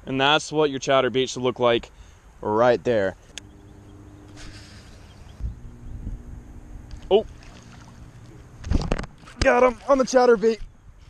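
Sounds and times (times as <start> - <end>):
low rumbling wind: 2.4 - 11.0
microphone handling noise: 3.2 - 9.6
fishing rod swept back: 4.3 - 5.4.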